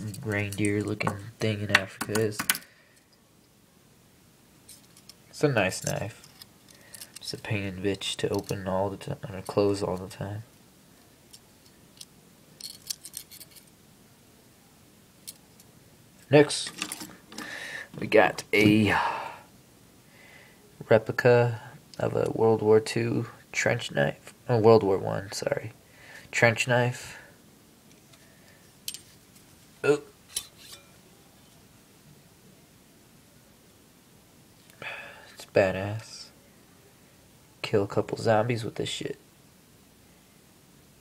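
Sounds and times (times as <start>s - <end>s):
short metallic ring: 30.3s - 31.0s.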